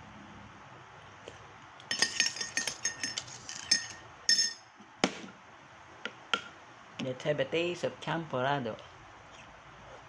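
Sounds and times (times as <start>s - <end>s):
metal spoon clinking on ceramic bowl: 1.9s - 4.7s.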